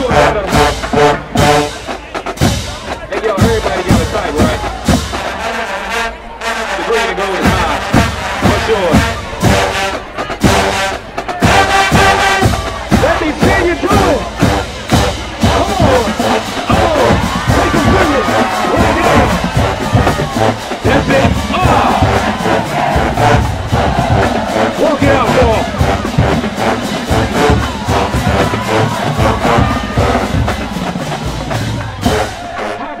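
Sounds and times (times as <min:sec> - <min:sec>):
crowd noise: 0:00.0 - 0:33.0
marching band playing: 0:00.0 - 0:33.0.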